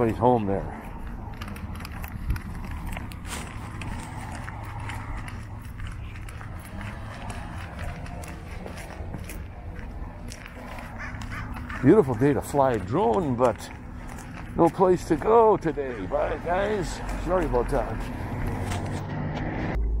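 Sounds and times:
footsteps on asphalt: 0.0s - 19.8s
steady low rumble: 0.0s - 20.0s.

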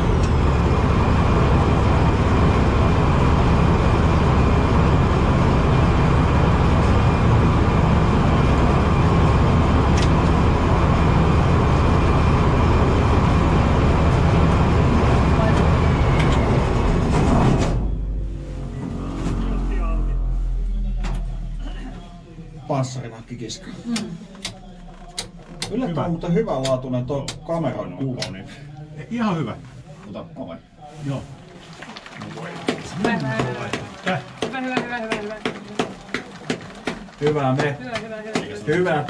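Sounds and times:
tracked vehicle engine droning: 0.0s - 30.0s, 30.6s - 39.0s.

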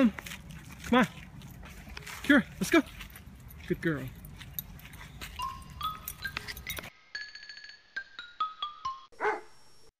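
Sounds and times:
descending chiming jingle: 3.5s - 9.0s
dog bark: 9.2s - 9.5s.

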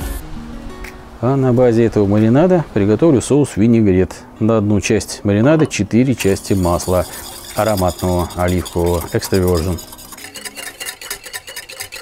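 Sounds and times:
wire whisk clicking against bowl: 6.3s - 12.0s.

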